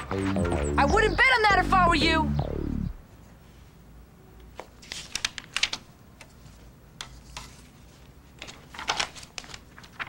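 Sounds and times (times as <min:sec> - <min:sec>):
paper rustling: 0:04.5 - 0:10.0.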